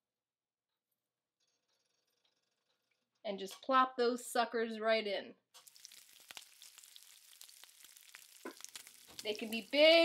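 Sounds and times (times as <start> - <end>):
dough frying in hot oil: 5.6 - 10.0.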